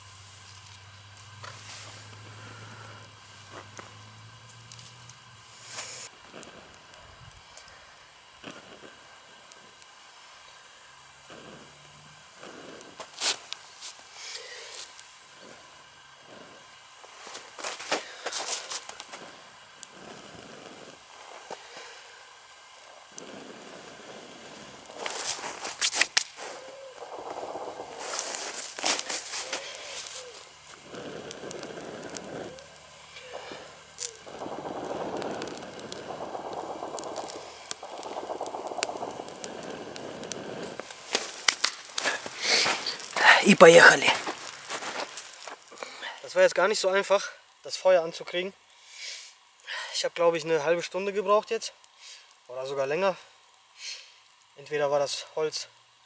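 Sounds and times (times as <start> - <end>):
twig fire crackling and popping: 0.0 - 56.0
twigs rustling by hand: 24.4 - 46.2.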